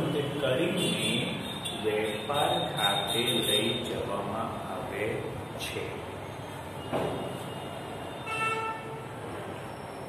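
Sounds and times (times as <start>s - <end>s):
vehicle horn toot: 7.2s - 9.1s.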